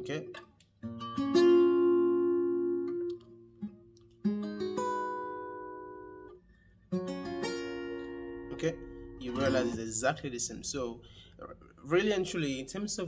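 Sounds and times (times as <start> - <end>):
fingerpicked acoustic guitar chords: 0.0 - 10.1.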